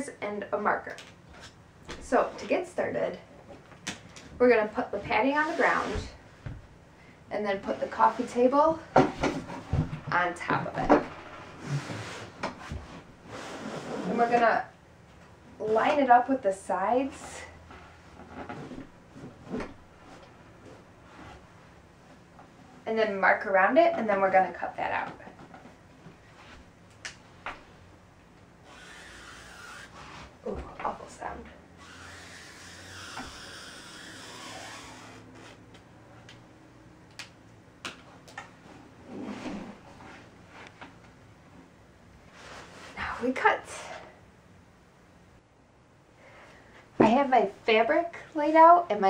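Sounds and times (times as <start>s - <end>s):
soft scraping rustle: 4.4s - 6.3s, 7.5s - 10.1s, 11.1s - 14.7s, 38.6s - 44.0s.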